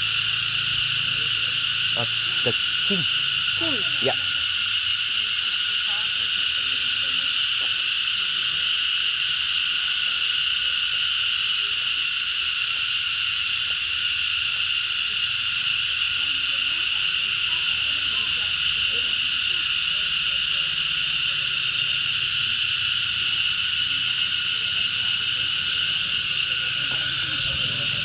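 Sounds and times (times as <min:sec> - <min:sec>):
insects buzzing: 0:00.0 - 0:28.0.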